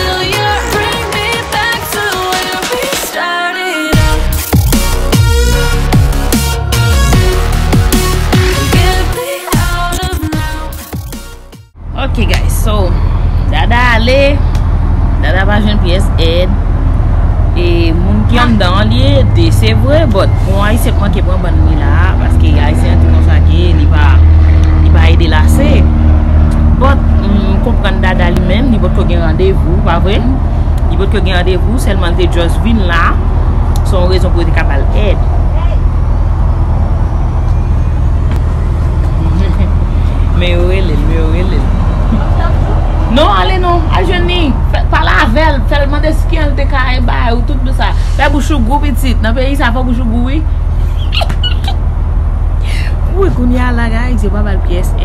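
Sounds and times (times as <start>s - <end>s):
motor rumbling: 4.0s - 47.8s
loud steady low hum: 11.7s - 55.0s
woman talking: 11.9s - 14.5s, 15.2s - 16.6s, 17.6s - 25.9s, 26.7s - 35.2s, 39.2s - 50.5s, 52.7s - 55.0s.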